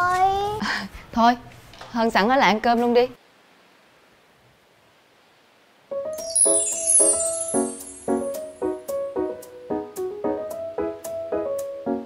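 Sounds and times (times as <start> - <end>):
faint steady hiss: 0.0 - 12.0
piano-like music: 5.9 - 12.0.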